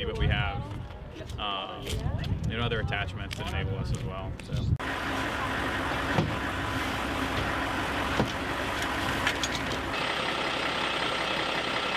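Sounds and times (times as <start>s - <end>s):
vehicle engine running: 4.8s - 11.9s
gear knocking against vehicle: 7.3s - 9.9s.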